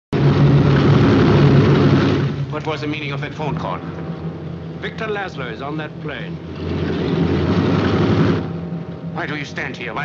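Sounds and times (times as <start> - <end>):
propeller engines droning: 0.2 - 10.0.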